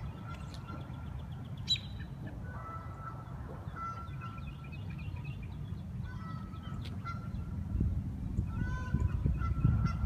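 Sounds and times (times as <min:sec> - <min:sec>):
geese honking: 0:00.0 - 0:05.2, 0:06.0 - 0:07.6, 0:08.5 - 0:10.0
small birds chirping: 0:00.0 - 0:09.8.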